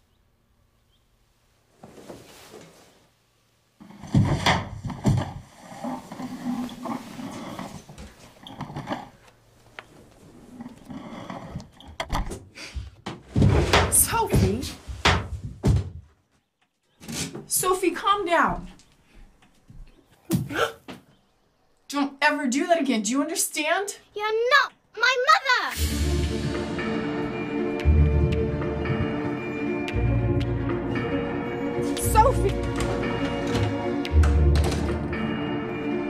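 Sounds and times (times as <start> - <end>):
thumps and knocks: 4.0 - 5.5, 11.7 - 16.2, 32.1 - 35.1.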